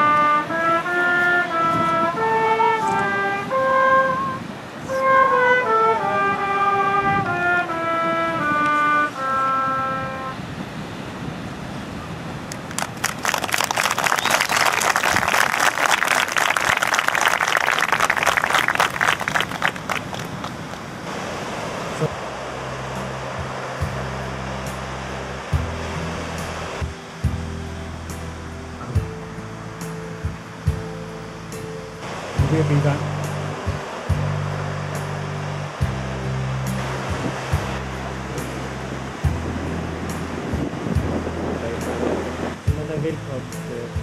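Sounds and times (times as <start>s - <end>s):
soft music with low held notes: 0.0s - 10.4s, 22.0s - 44.0s
trumpet phrase: 0.0s - 10.4s
crowd applauding: 12.5s - 20.8s.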